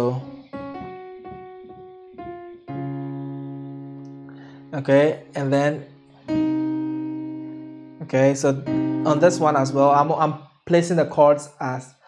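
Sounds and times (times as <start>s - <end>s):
piano playing: 0.0s - 10.5s.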